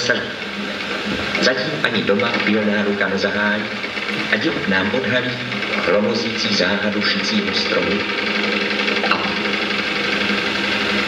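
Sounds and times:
sewing machine running: 0.0 - 11.0.

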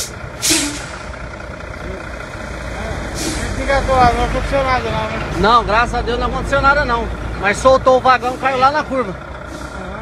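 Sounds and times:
truck diesel engines running: 0.0 - 10.0.

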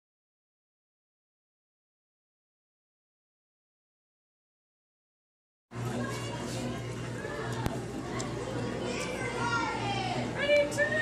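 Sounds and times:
children's voices at play: 5.8 - 11.0
child's voice gliding downward: 8.6 - 11.0.

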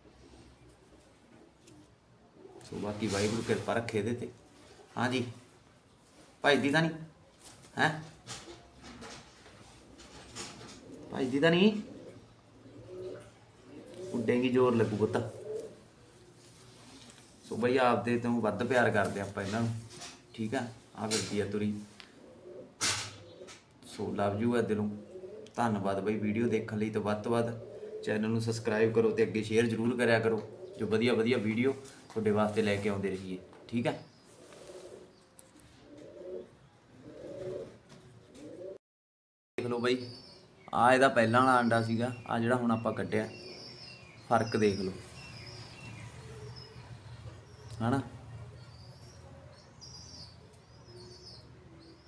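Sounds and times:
pigeon cooing: 0.0 - 3.3, 9.6 - 17.0, 21.1 - 23.8, 24.7 - 26.1, 27.2 - 32.0, 33.4 - 38.8, 42.8 - 52.0.

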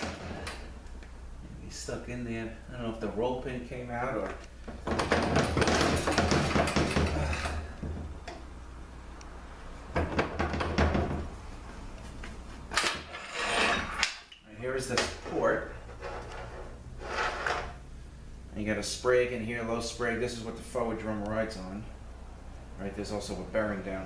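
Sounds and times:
metal parts scraping and clanking: 12.7 - 14.2, 15.4 - 17.8.

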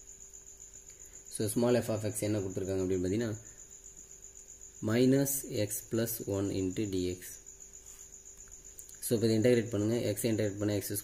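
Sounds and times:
faint high-pitched whine: 0.0 - 11.0
man talking: 1.3 - 3.4, 4.8 - 7.4, 9.0 - 11.0.

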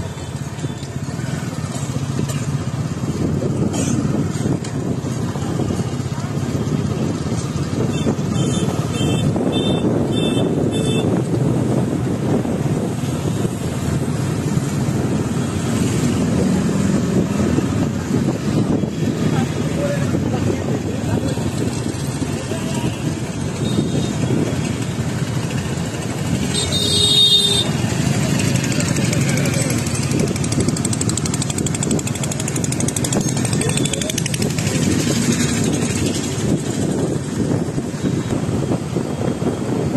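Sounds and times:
motorcycle running: 0.0 - 39.9
wind rumble on microphone: 0.5 - 26.6, 27.6 - 39.9.

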